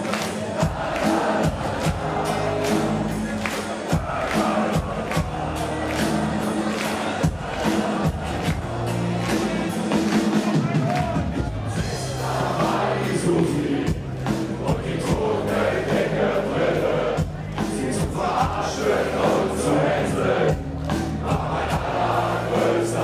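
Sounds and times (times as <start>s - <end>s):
people singing: 0.0s - 10.0s, 11.7s - 23.0s
crowd noise: 0.0s - 23.0s
drums beating: 0.0s - 23.0s
bass guitar: 0.6s - 23.0s.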